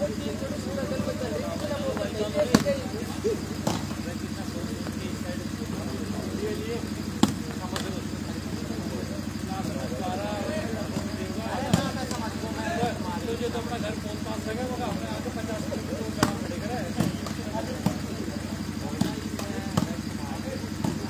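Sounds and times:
spectators' voices: 0.0 - 21.0
volleyball hand slaps: 1.9 - 2.8, 3.6 - 4.0, 7.2 - 8.0, 10.9 - 12.2, 16.2 - 18.1, 18.9 - 20.0, 20.8 - 21.0.

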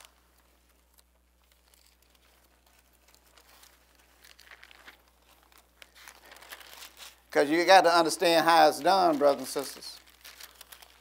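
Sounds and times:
thin pages rustling: 0.0 - 7.3, 8.2 - 11.0.

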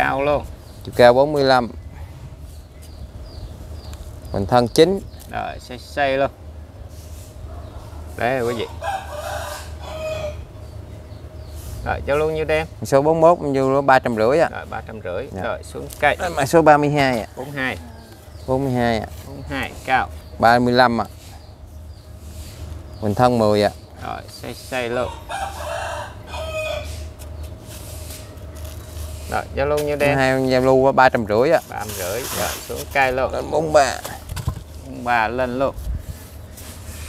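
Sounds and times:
rooster crowing: 8.4 - 10.5, 17.4 - 18.5, 24.9 - 27.2.

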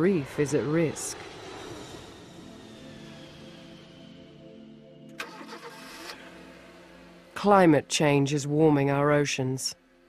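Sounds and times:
soft background music: 0.0 - 10.0
car engine starting: 5.0 - 7.4.

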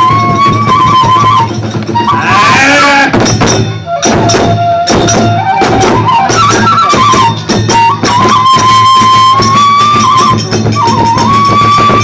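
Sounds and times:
drum strokes: 0.0 - 12.0
high bamboo flute melody: 0.0 - 12.0.

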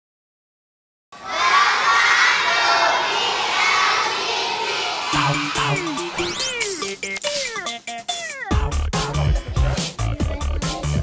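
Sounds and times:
children shouting and cheering: 1.2 - 8.6.

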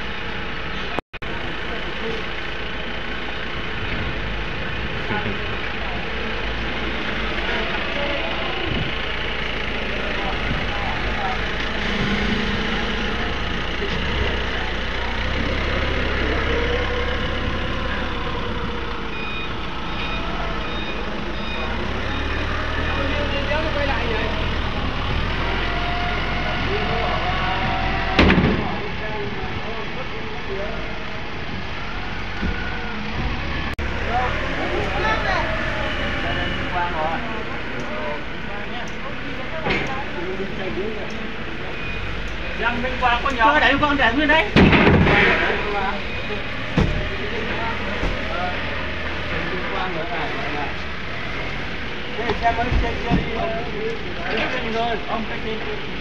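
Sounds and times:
forklift engine running: 0.0 - 56.0
workers' voices chatter: 0.6 - 56.0.

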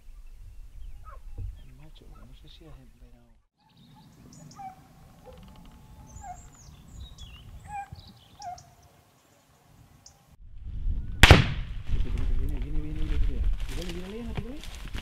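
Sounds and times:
animal calls and chirps: 0.2 - 10.3
sharp loud crack: 11.2 - 11.8.

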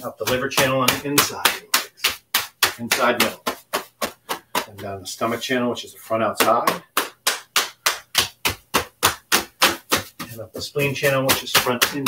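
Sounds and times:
hands slapping legs: 0.0 - 5.4, 6.4 - 12.0.

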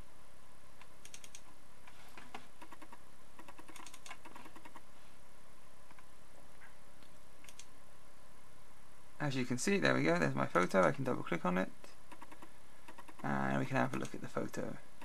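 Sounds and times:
steady background hiss: 0.0 - 15.0
laptop controls clicking: 0.8 - 1.5, 2.2 - 4.8, 12.1 - 13.3.

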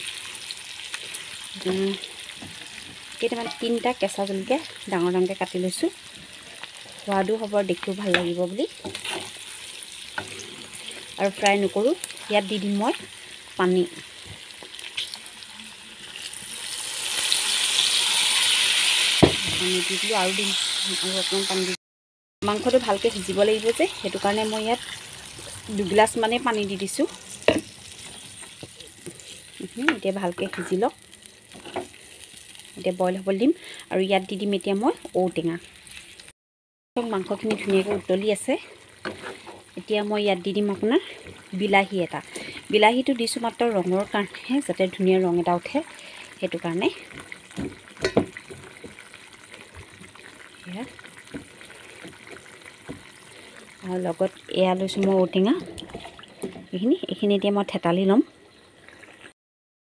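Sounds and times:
meat sizzling in a pan: 0.0 - 21.8, 22.5 - 36.3, 37.0 - 55.3
metal ladle knocking a pan: 3.4 - 3.8, 47.5 - 49.0
spatula stirring: 8.8 - 11.1, 39.0 - 39.8.

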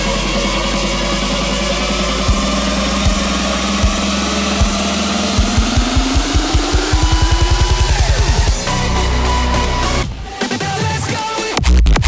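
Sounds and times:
sustained synth chords: 0.0 - 10.4
rising synth tone: 0.0 - 10.5
kick drum hits: 2.3 - 8.6.

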